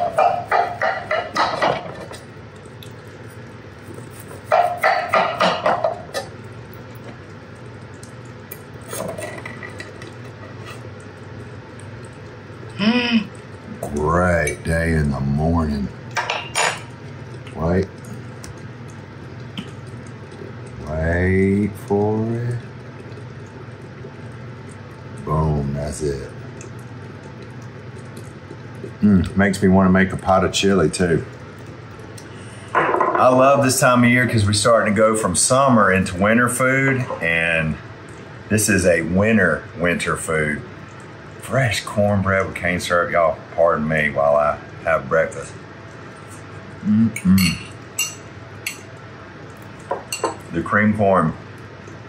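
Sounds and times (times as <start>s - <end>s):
man murmuring: 46.8s - 47.7s.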